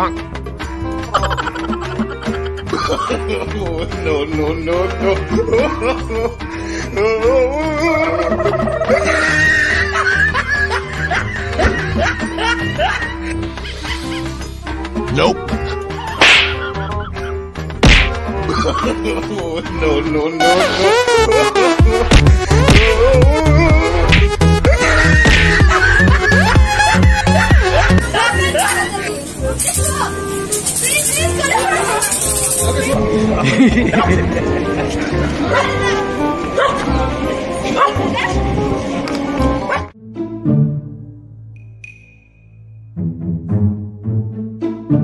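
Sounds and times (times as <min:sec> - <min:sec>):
music track: 0:00.0 - 0:45.0
loud whack: 0:16.2 - 0:16.6, 0:17.8 - 0:18.2, 0:22.1 - 0:23.0, 0:25.2 - 0:25.6
background music with beat: 0:20.4 - 0:28.7
dog barking: 0:35.5 - 0:35.8, 0:36.6 - 0:36.8, 0:37.8 - 0:38.4, 0:39.6 - 0:39.9.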